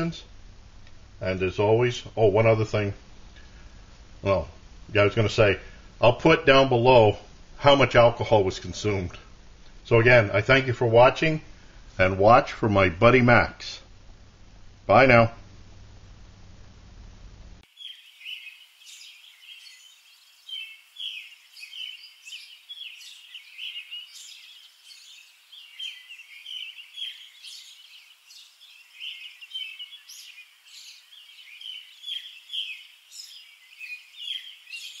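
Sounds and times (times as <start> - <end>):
faint room hum: 0.0 - 35.0
songbirds singing: 17.6 - 35.0.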